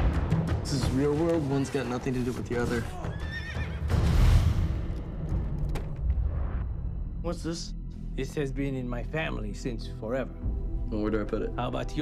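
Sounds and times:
horse neighing: 3.0s - 3.9s.

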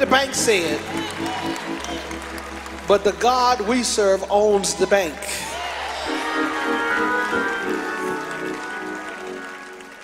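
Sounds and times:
sustained instrumental chords: 6.0s - 10.0s.

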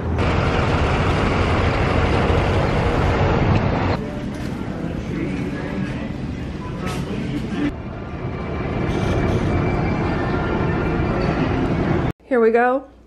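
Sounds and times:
escalator running: 0.0s - 12.1s.

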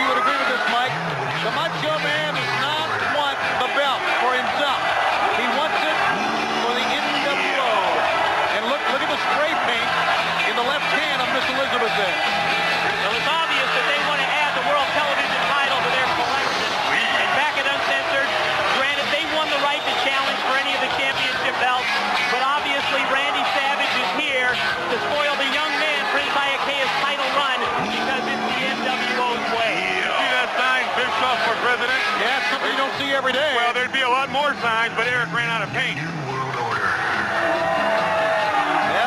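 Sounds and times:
arena crowd noise: 0.0s - 39.0s
music playing: 0.0s - 39.0s.

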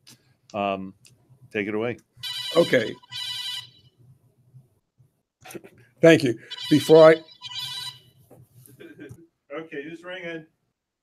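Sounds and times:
phone ringtone: 2.2s - 3.9s, 6.5s - 8.2s.

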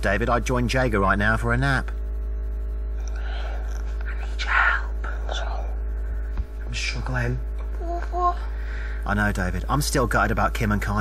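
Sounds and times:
steady low hum: 0.0s - 11.0s
person whispering: 3.9s - 5.8s.

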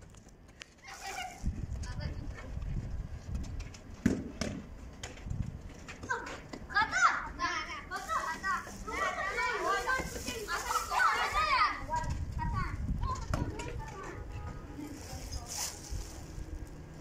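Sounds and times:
children shouting: 6.1s - 11.9s.

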